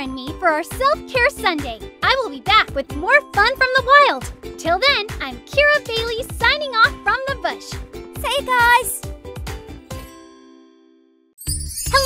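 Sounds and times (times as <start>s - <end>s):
girl's voice: 0.0s - 9.0s
music: 0.0s - 12.0s
bell-like chime: 9.9s - 12.0s.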